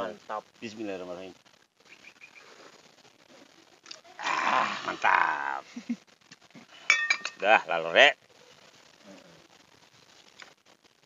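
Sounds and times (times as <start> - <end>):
faint outdoor background sound: 0.0 - 11.0.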